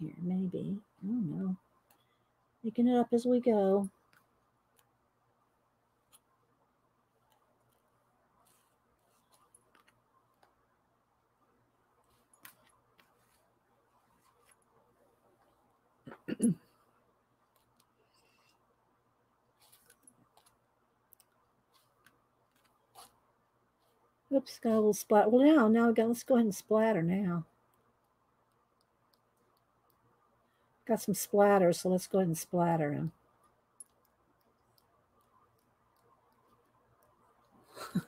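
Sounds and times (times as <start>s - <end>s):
brush on paper: 8.4s - 9.4s, 22.9s - 23.2s.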